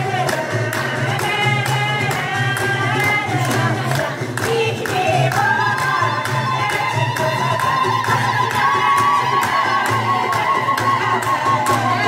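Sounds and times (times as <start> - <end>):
women's chorus singing: 0.0 - 12.0.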